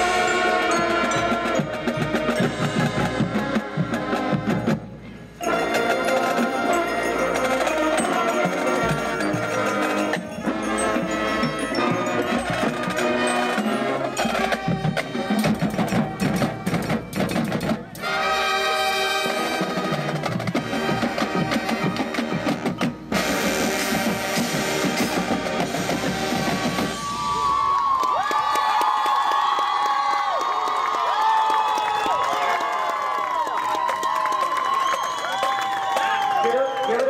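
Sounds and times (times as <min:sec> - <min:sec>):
marching band playing: 0:00.0 - 0:27.7
crowd cheering: 0:26.5 - 0:37.0
whistling: 0:34.7 - 0:37.0.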